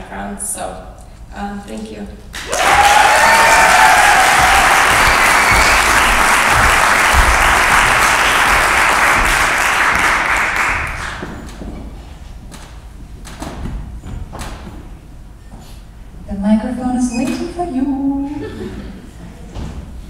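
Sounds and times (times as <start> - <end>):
audience clapping: 2.3 - 11.6
person whooping: 2.5 - 6.2.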